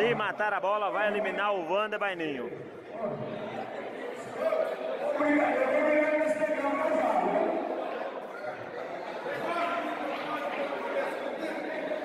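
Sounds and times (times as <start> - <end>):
crowd talking in echoing hall: 0.0 - 12.0.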